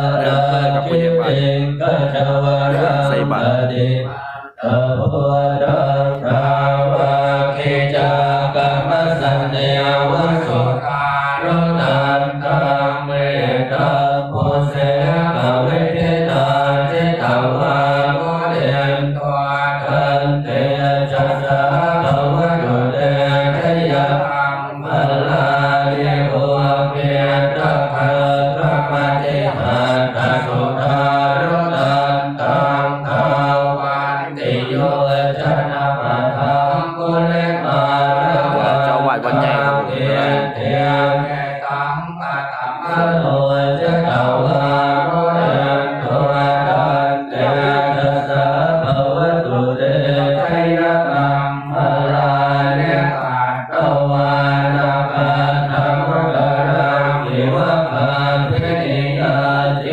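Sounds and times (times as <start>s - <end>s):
monks chanting in unison: 0.0s - 59.9s.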